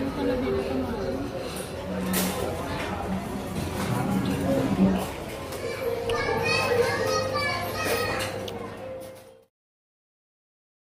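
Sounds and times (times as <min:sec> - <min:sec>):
children chattering and calling: 0:00.0 - 0:09.2.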